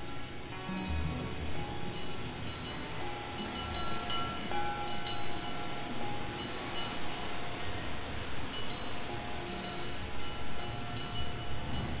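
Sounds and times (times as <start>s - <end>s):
faint held ringing tones: 0.0s - 12.0s.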